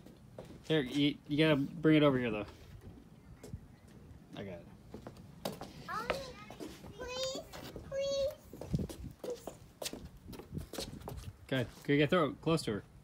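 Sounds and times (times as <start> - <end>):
child's high-pitched vocal sounds: 5.8 - 9.6.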